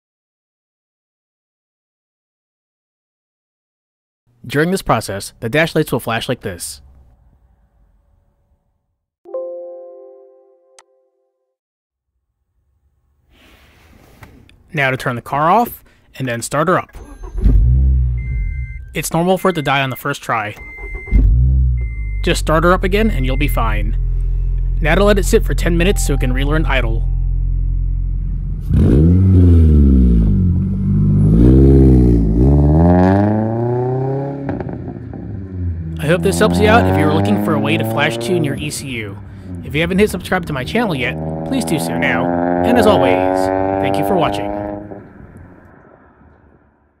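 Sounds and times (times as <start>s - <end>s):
steady high tone: 9.3s - 11.1s, 24.8s - 28.4s
road noise: 13.5s - 47.0s
car engine starting and dying: 16.8s - 46.7s.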